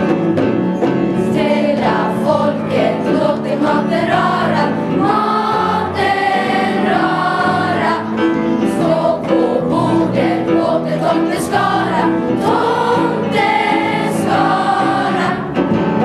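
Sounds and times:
children's choir singing: 1.2 - 16.0.

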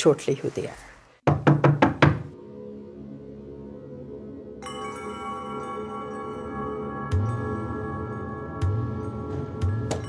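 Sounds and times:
ambient music drone: 2.4 - 10.0.

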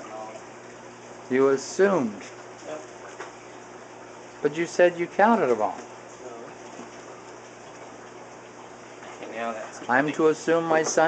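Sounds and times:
aquarium water hiss: 0.0 - 11.0.

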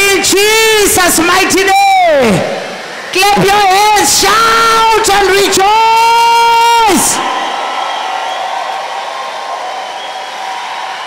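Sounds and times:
congregation clapping: 0.2 - 11.0.

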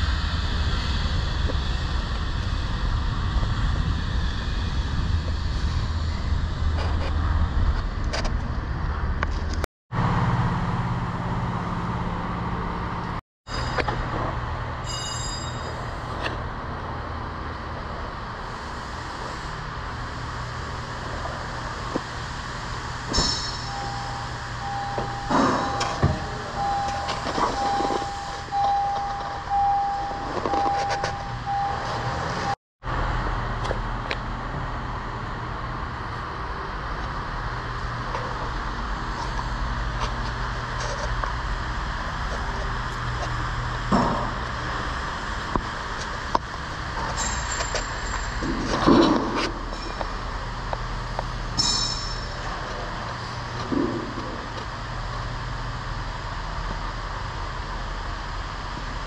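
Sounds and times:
low hum of shop noise: 0.0 - 59.0
car door warning chime beeping: 23.7 - 32.6.

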